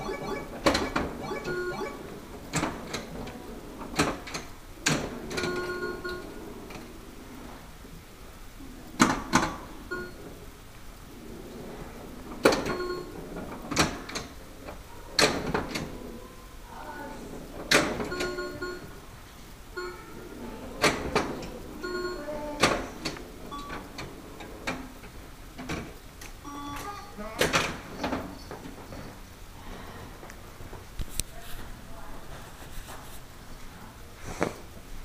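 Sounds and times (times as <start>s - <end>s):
short electronic beeps: 0.0s - 2.0s, 26.4s - 27.2s
pinball mechanical clacks: 0.0s - 6.9s, 12.1s - 14.4s, 17.4s - 18.9s.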